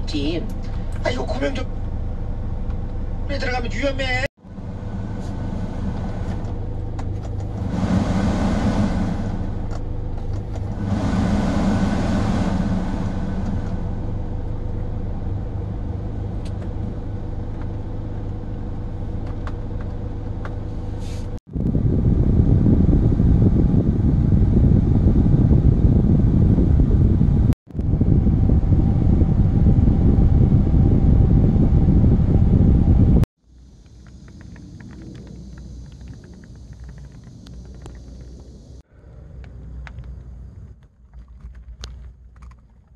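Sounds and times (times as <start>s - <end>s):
van engine running: 0.0s - 38.9s
coarse engine rumble: 0.0s - 42.9s.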